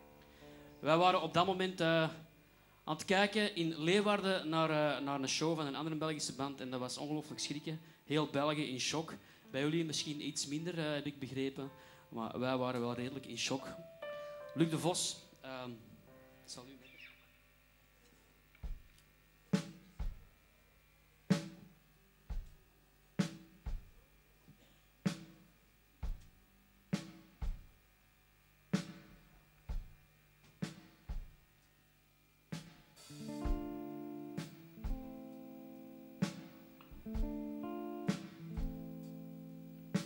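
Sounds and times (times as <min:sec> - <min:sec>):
sustained guitar chords: 0:12.4 - 0:17.3, 0:33.0 - 0:40.0
kick drum and snare beat: 0:18.6 - 0:18.9, 0:19.6 - 0:20.3, 0:22.3 - 0:22.6, 0:23.2 - 0:24.0, 0:26.0 - 0:26.4, 0:27.0 - 0:27.8, 0:28.8 - 0:31.5, 0:32.5 - 0:33.8, 0:34.4 - 0:35.2, 0:36.2 - 0:37.4, 0:38.1 - 0:38.8.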